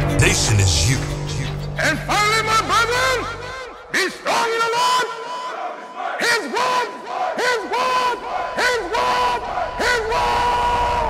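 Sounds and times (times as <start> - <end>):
group of voices shouting: 4.2 - 11.0.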